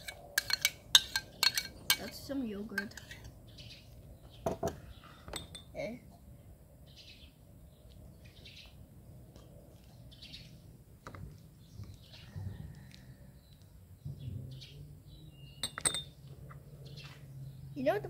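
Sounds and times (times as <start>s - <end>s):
metal clinking against glass bowl: 0.0s - 3.2s, 5.3s - 5.8s, 15.6s - 16.2s
bird chirps: 11.5s - 18.0s.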